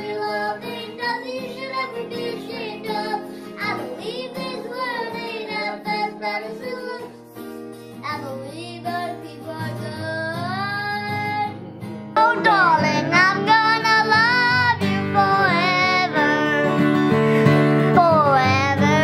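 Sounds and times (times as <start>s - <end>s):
girl singing country song: 0.0s - 19.0s
strummed acoustic guitar: 0.0s - 19.0s.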